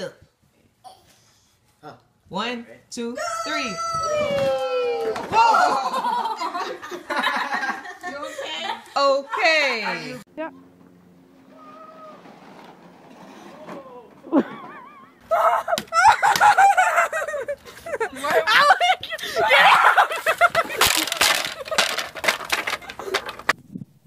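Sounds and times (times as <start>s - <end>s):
excited shrieking voices: 11.5s - 12.4s.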